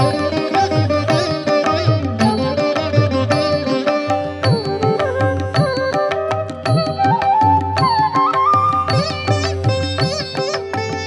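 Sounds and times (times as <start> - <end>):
plucked string melody: 0.0 - 11.0.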